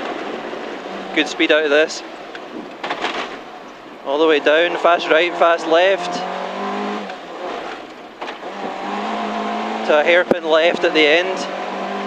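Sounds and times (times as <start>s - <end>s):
car engine running hard: 0.0s - 12.0s.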